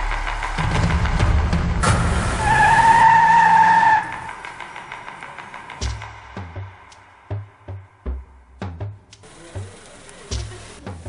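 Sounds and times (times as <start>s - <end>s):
car tyres screeching: 0.2s - 6.8s.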